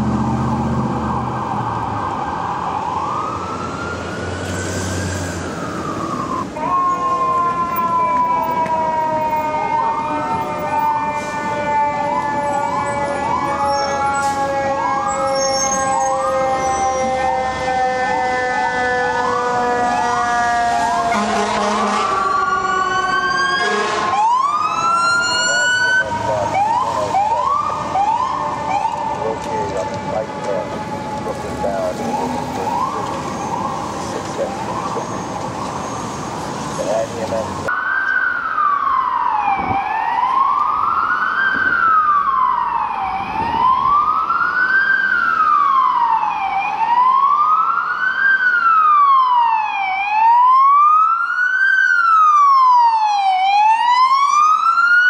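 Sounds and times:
electronic siren sweep: 0:00.0 - 0:55.0.

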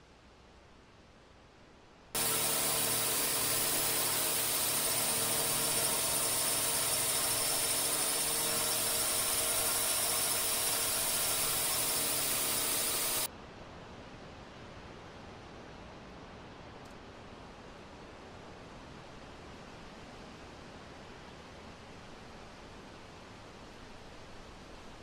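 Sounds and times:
faint background noise: 0:00.0 - 0:02.1
loud motor humming and hissing: 0:02.2 - 0:13.3.

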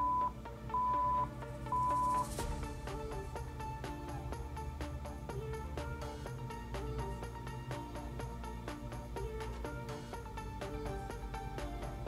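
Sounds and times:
electronic timer beeps: 0:00.0 - 0:02.3
background pop music: 0:00.0 - 0:12.0.

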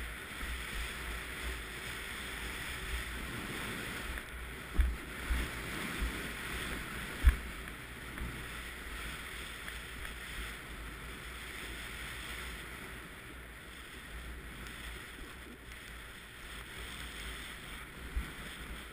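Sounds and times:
skis hissing through powder snow: 0:00.0 - 0:18.9
wind rumble on microphone: 0:00.0 - 0:18.9.

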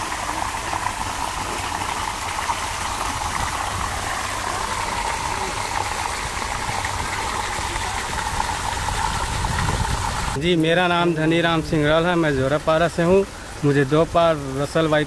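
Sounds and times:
running water rushing: 0:00.0 - 0:15.0.

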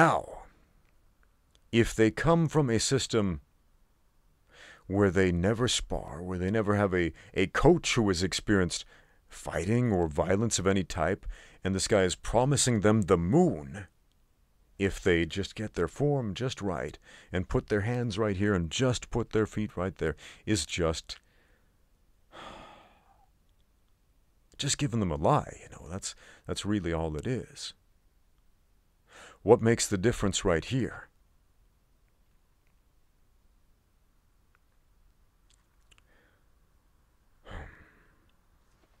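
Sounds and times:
man sighing: 0:22.3 - 0:23.3, 0:37.4 - 0:38.3.

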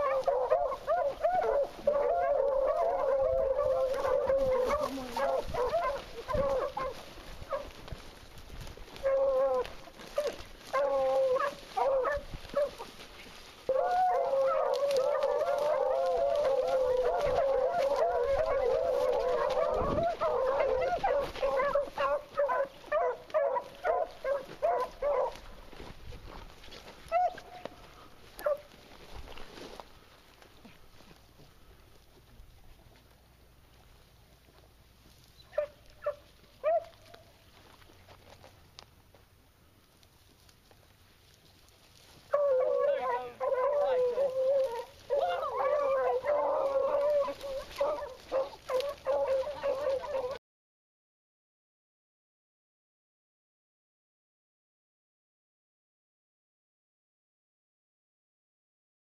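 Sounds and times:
beagles baying: 0:00.0 - 0:07.9, 0:08.8 - 0:25.8, 0:26.9 - 0:28.9, 0:35.3 - 0:37.4, 0:42.1 - 0:50.4.

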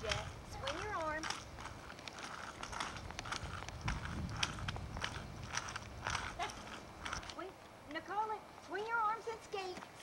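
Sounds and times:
roller skates on concrete: 0:00.0 - 0:10.0.

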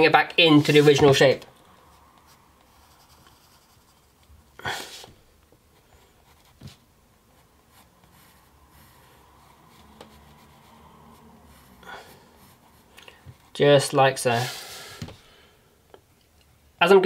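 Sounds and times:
pencil scratching on paper: 0:00.5 - 0:01.2, 0:01.9 - 0:04.3, 0:05.8 - 0:13.6.

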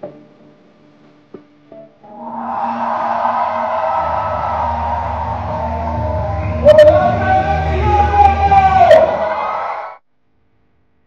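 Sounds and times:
heavy bass: 0:02.1 - 0:09.4
loud live concert music: 0:02.1 - 0:09.6.

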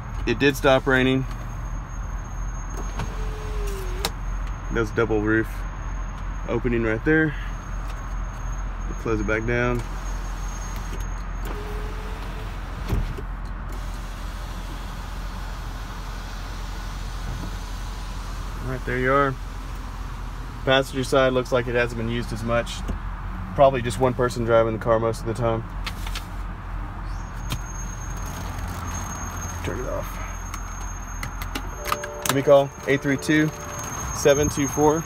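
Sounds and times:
car engine idling: 0:13.9 - 0:22.2, 0:27.0 - 0:35.0.

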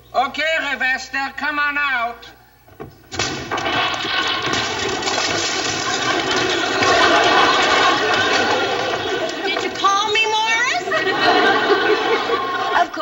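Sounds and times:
audience applauding: 0:03.6 - 0:13.0.

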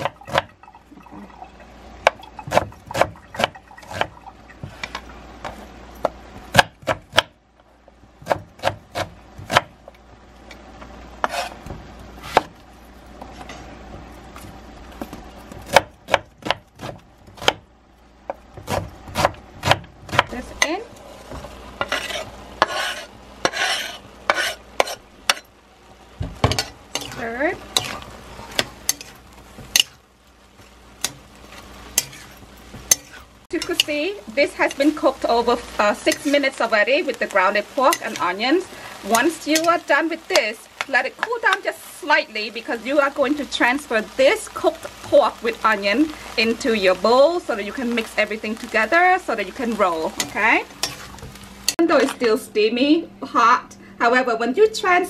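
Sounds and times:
knife scraping board: 0:11.2 - 0:12.5, 0:21.3 - 0:25.5, 0:32.0 - 0:33.3.

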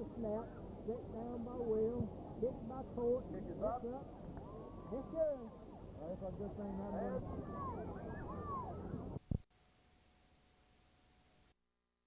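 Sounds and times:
voices and background din: 0:00.0 - 0:09.2
tape hiss: 0:00.0 - 0:11.6.

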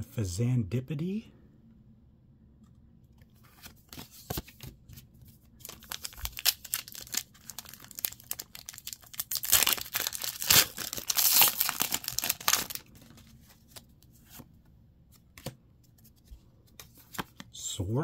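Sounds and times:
foil wrapper crinkling and tearing: 0:05.6 - 0:13.2.

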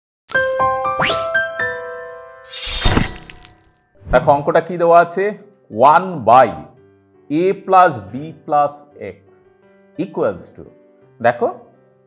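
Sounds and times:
held chime-like notes: 0:00.3 - 0:01.0.

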